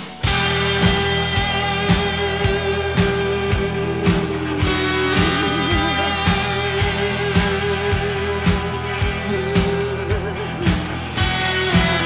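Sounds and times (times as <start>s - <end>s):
electric guitar playing: 0.0s - 12.0s
steady drum beat: 0.0s - 12.0s.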